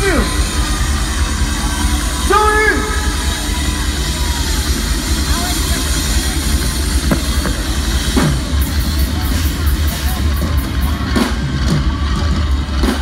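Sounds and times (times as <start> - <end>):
crowd voices: 0.0 - 13.0
deep bass rumble: 0.0 - 13.0
drums ticking rhythmically: 0.0 - 13.0.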